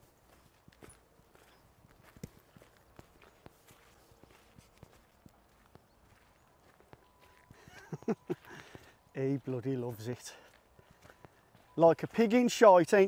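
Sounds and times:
faint footsteps on gravel: 0.0s - 13.0s.

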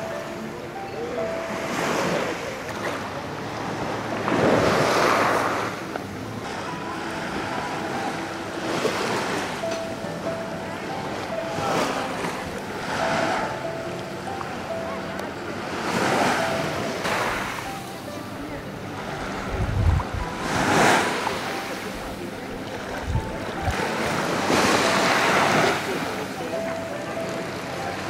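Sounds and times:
small waves washing: 1.4s - 13.9s, 15.4s - 26.5s
wind buffeting microphone: 19.4s - 20.4s, 23.0s - 23.7s.

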